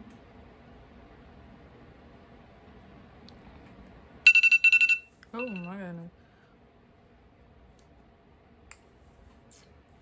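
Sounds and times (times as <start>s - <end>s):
electronic alarm beeping: 4.3s - 5.8s.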